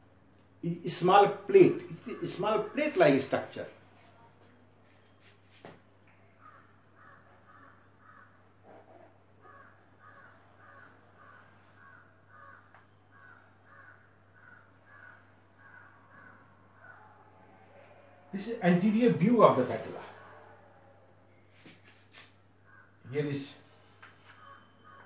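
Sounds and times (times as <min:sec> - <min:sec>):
faint repeated bird calls: 0:00.0 - 0:25.0
low electrical hum: 0:00.0 - 0:25.0.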